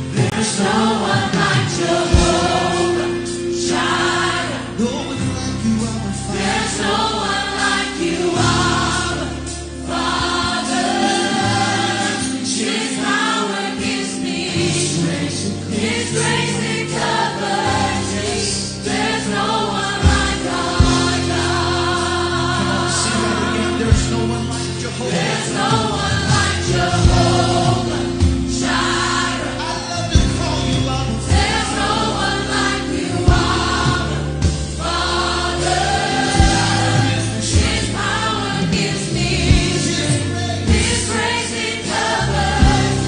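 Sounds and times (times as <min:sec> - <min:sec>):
choir singing: 0:00.0 - 0:43.0
keyboard: 0:00.0 - 0:43.0
man and woman singing: 0:00.2 - 0:03.3
held bass notes: 0:17.7 - 0:43.0.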